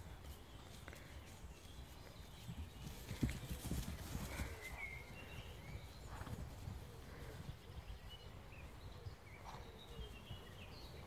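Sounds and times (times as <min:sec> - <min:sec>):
hooves thudding on grass: 0:00.0 - 0:11.0.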